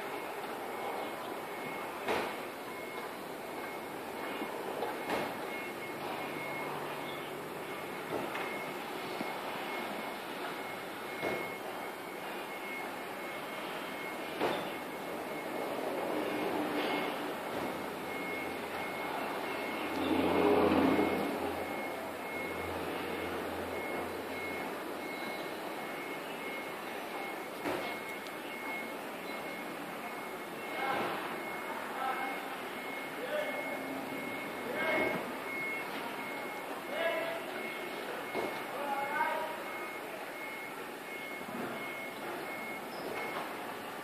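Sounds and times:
background traffic noise: 0.0s - 44.0s
vehicle passing: 18.1s - 24.5s.

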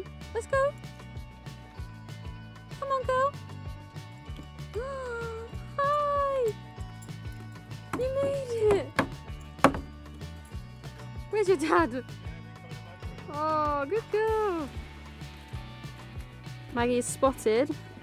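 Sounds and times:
background music: 0.0s - 18.0s
sharp knocks: 8.7s - 9.9s.

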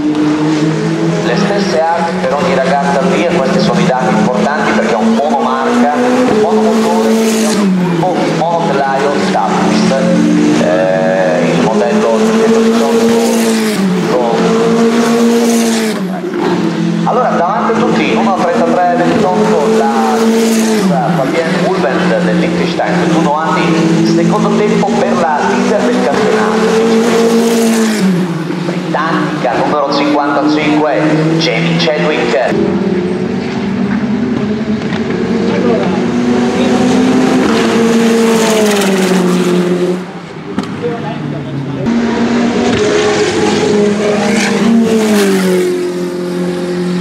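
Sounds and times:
race car engines droning: 0.0s - 47.0s
announcer talking over loudspeaker: 0.8s - 33.0s, 34.0s - 45.7s.

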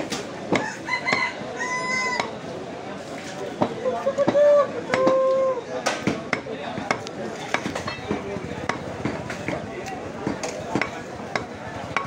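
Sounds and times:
cleaver chopping on wooden block: 5.8s - 12.0s.

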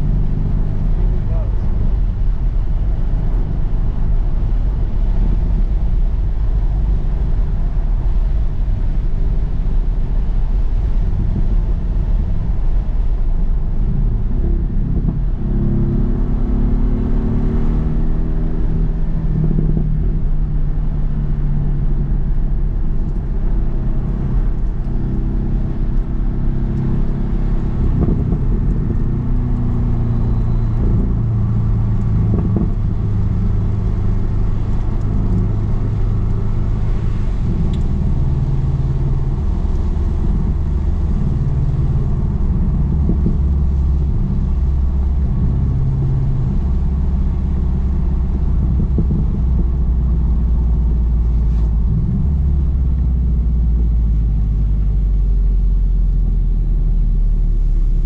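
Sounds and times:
car engine drone: 0.0s - 58.0s
tyre and road noise: 0.0s - 58.0s.

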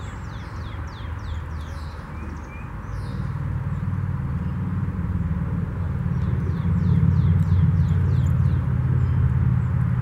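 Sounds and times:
low engine rumble: 0.0s - 10.0s
small bird chirping: 5.8s - 9.8s.

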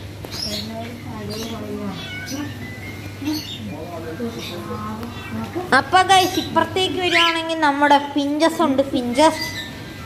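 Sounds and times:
budgerigars chirping: 0.4s - 7.3s
lower wavering calls: 0.5s - 7.8s.

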